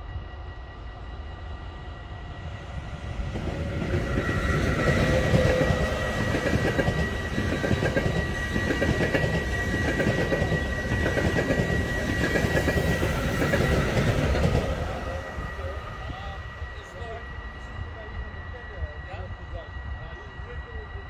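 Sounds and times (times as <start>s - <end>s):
high train whine: 0.0s - 21.0s
train wheels rumbling on rails: 0.0s - 21.0s.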